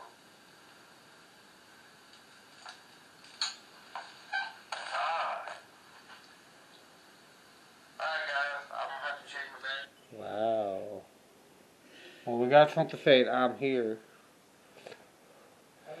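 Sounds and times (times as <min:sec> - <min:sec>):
recorder speaker hiss: 0:00.0 - 0:16.0.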